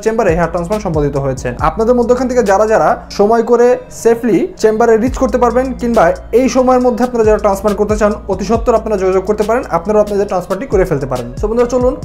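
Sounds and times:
background music: 0:00.0 - 0:12.0
man talking: 0:00.0 - 0:12.0.

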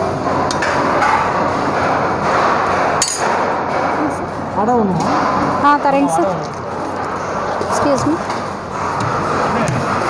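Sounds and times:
metal dishes clinking: 0:03.0 - 0:03.4.

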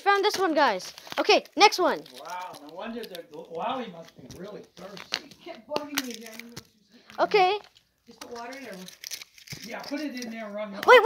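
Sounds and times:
child's voice: 0:00.0 - 0:02.0, 0:07.2 - 0:07.6, 0:10.8 - 0:11.0
plastic egg shells clicking: 0:00.2 - 0:10.4.

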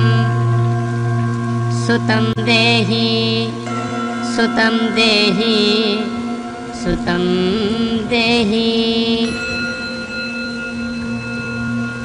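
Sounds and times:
musical drone of held notes: 0:00.0 - 0:12.0.

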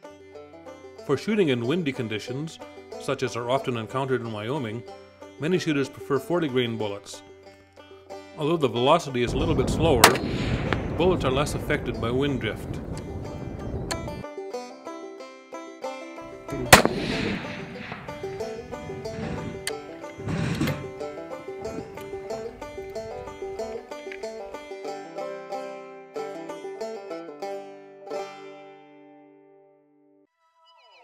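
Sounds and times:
background music: 0:00.0 - 0:29.7
dull bang: 0:09.4 - 0:14.2, 0:16.4 - 0:23.6
rifle shot: 0:10.0 - 0:12.0, 0:16.5 - 0:19.8.

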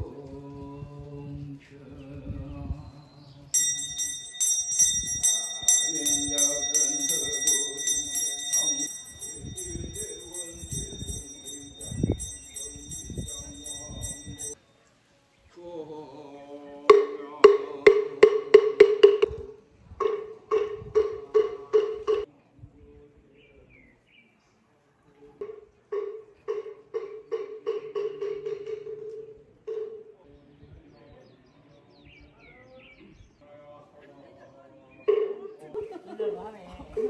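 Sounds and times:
buddhist chanting: 0:00.0 - 0:14.6, 0:15.5 - 0:18.8
small bell shaken rapidly: 0:03.6 - 0:14.6.

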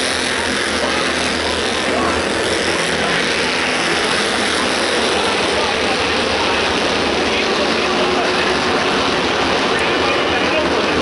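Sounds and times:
race car engines running hard: 0:00.0 - 0:11.0.

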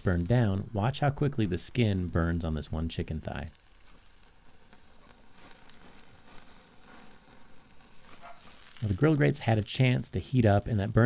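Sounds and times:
chicken sizzling on a grill: 0:00.0 - 0:11.0.

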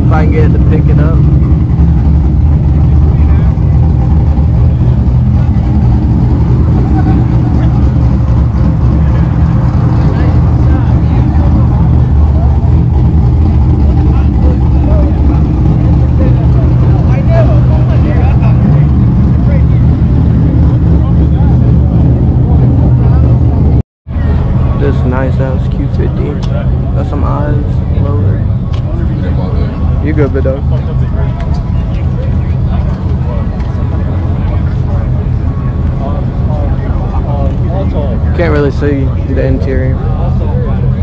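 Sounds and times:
car engine idling: 0:00.0 - 0:41.0
crowd voices: 0:00.0 - 0:41.0.

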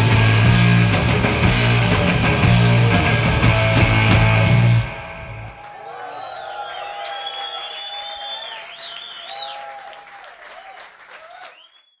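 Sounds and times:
audience applauding and cheering: 0:05.4 - 0:12.0.

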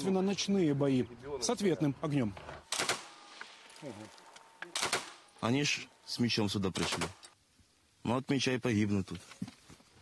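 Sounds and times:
small-arms gunfire cracks: 0:02.6 - 0:03.4, 0:04.6 - 0:05.3, 0:06.7 - 0:07.3.

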